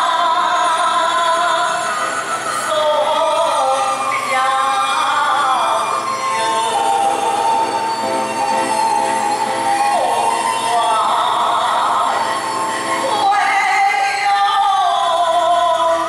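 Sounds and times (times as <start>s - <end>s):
instrumental accompaniment: 0.0s - 16.0s
person singing long sliding notes: 0.0s - 16.0s.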